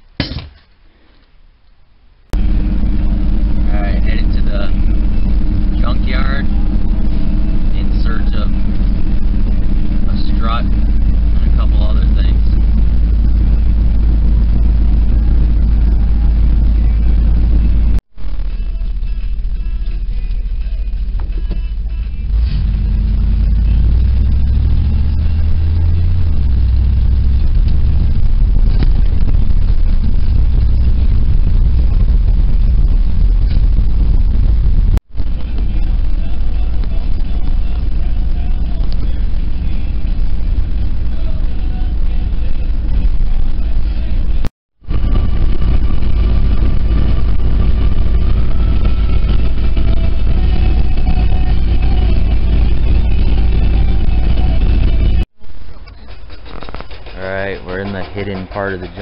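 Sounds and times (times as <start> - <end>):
vehicle engine and road rumble: 0.0 - 59.0.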